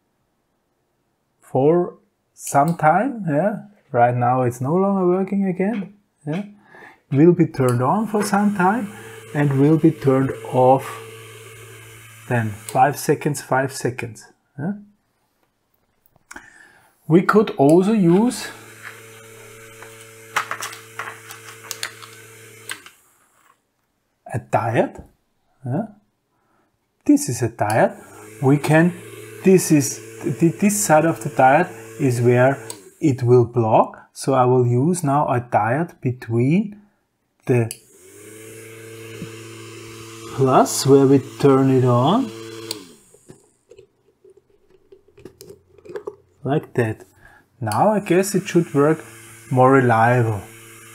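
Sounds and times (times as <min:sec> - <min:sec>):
small motor humming: 0:07.9 - 0:13.0, 0:17.9 - 0:23.4, 0:27.7 - 0:33.0, 0:37.8 - 0:43.8, 0:48.0 - 0:50.9
fan blade spinning down: 0:07.9 - 0:13.1, 0:27.8 - 0:33.0, 0:37.9 - 0:43.3, 0:48.0 - 0:50.9.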